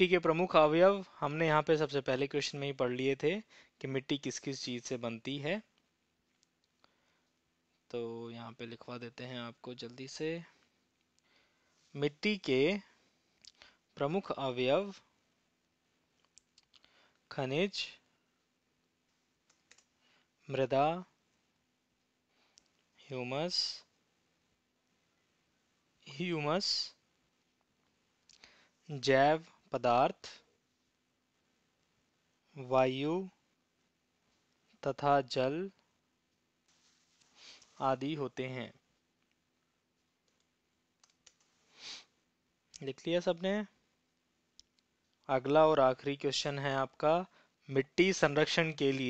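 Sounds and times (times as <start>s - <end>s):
computer keyboard clicks: 19.5s - 19.9s.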